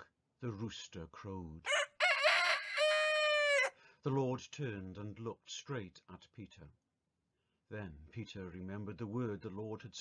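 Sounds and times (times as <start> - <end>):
rooster crowing: 1.7 - 3.8.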